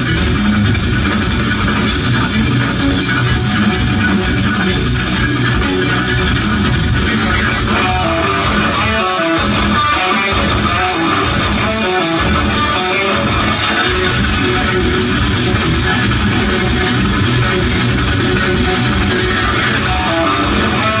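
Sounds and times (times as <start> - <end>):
electric guitar fast picking: 0.0 - 21.0.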